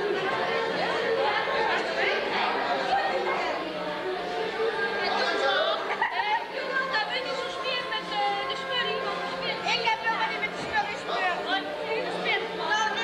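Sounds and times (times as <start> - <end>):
chatter of people talking: 0.0 - 13.0.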